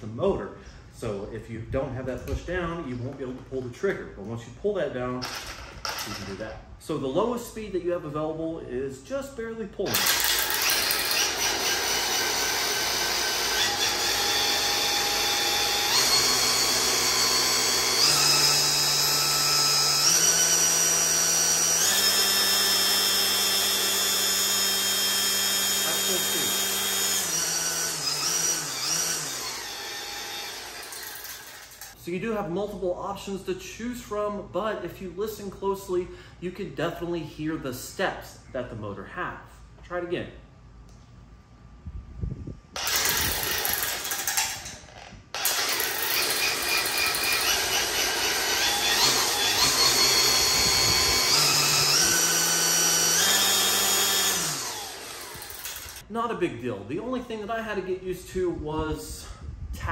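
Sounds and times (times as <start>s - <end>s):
string trimmer motor spinning: 5.2s - 6.3s, 9.9s - 32.0s, 42.8s - 56.1s.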